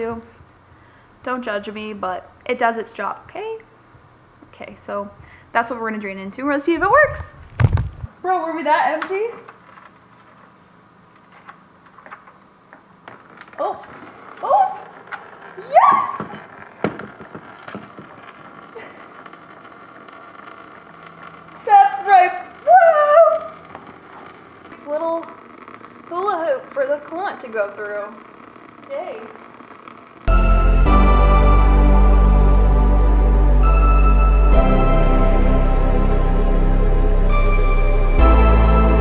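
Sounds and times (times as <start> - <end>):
faint steady hum: 0.0 - 16.6
woman exclaiming and laughing: 15.6 - 16.3, 22.7 - 23.5.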